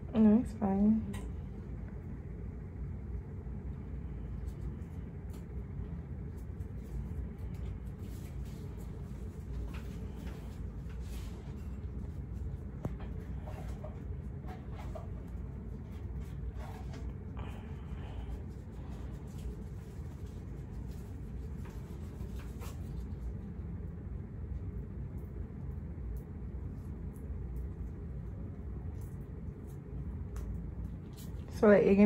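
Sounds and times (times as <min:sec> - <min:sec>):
low room rumble: 0:00.0 - 0:32.0.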